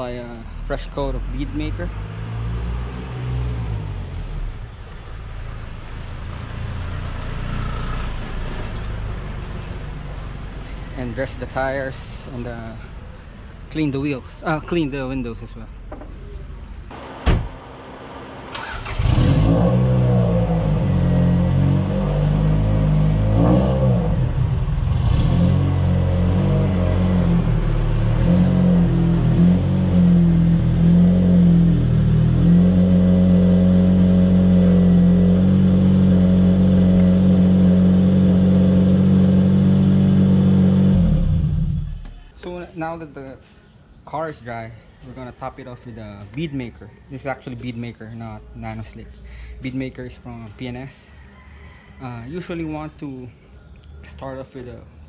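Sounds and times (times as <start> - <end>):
car engine starting and revving: 0.7 - 4.8, 16.9 - 42.3.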